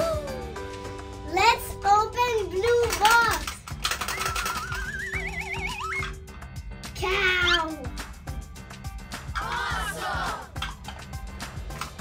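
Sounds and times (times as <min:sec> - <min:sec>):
background music with beat: 0:00.0 - 0:01.5, 0:03.6 - 0:12.0.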